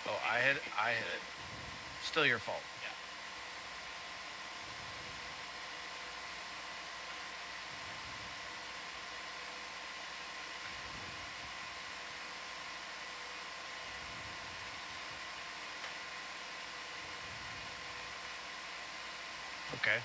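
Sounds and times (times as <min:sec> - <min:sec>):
steady hiss: 0:00.0 - 0:09.2
faint hum: 0:00.0 - 0:20.0.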